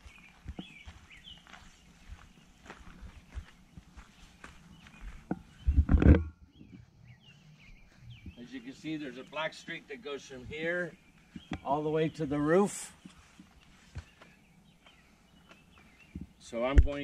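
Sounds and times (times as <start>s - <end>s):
flip-flop footsteps on grass and gravel: 0.0s - 17.0s
knocks and scuffs: 13.0s - 17.0s.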